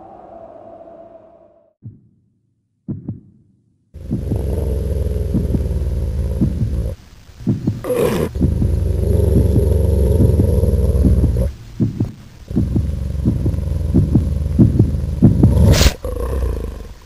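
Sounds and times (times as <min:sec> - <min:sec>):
deep rumbling animal growl: 0:04.0 - 0:07.0, 0:07.9 - 0:11.5, 0:12.5 - 0:17.0.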